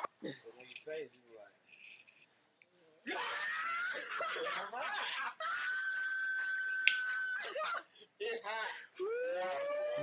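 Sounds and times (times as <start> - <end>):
man screaming and squealing: 3.1 - 4.3, 5.0 - 7.8, 9.0 - 10.0.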